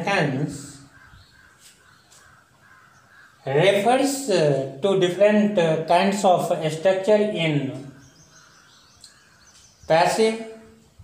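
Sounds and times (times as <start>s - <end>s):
distant bird calls: 0.0s - 11.0s.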